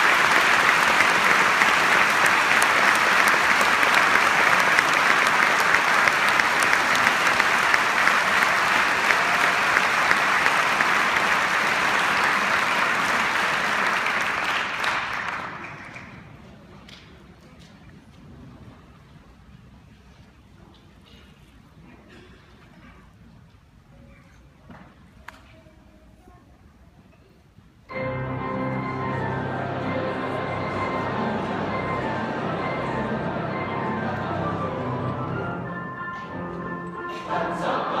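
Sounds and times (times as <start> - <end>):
audience applauding: 0.0 - 16.4, 28.6 - 35.2
crowd murmur: 27.2 - 38.0.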